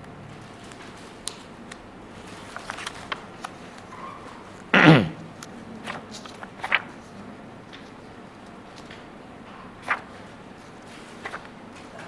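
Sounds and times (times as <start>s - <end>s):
paper rustling and crinkling: 0.3s - 4.7s, 5.4s - 12.0s.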